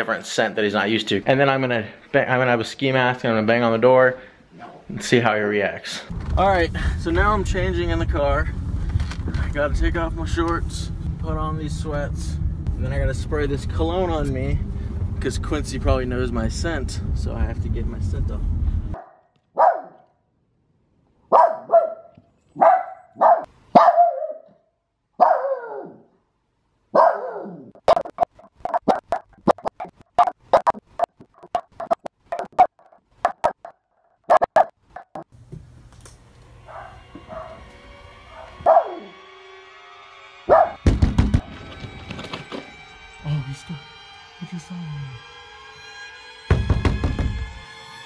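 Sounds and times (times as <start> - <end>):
dog barking: 19.0 - 20.0, 21.3 - 24.6, 25.2 - 26.1, 26.9 - 27.7, 34.3 - 34.7, 36.7 - 37.6, 38.3 - 39.1, 40.5 - 40.8
music: 36.9 - 48.0
loud thump: 40.8 - 42.6, 46.5 - 47.6.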